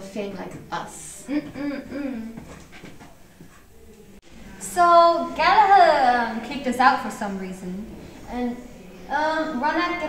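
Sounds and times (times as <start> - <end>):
girl humming closed-mouth: 1.3 - 2.4
people moving in chairs: 1.3 - 4.2.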